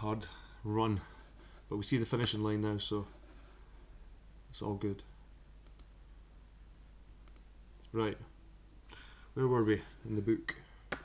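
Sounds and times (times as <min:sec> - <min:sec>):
faint computer clicks: 0:05.6 - 0:06.0, 0:07.2 - 0:08.0.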